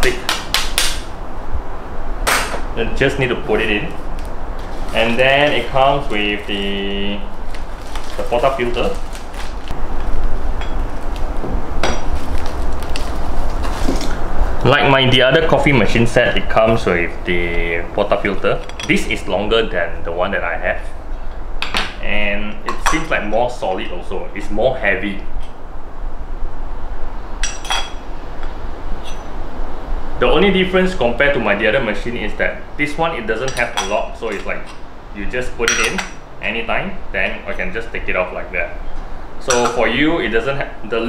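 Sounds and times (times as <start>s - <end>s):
cardboard and plastic rustling: 4.6s - 6.7s, 7.3s - 9.8s, 12.0s - 14.2s.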